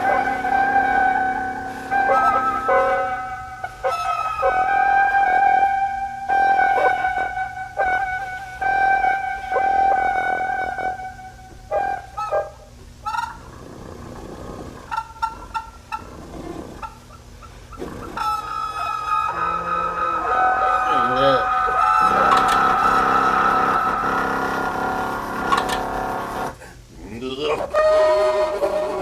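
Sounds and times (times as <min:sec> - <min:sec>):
pipe contraption honking: 0:00.0 - 0:26.6, 0:27.6 - 0:29.0.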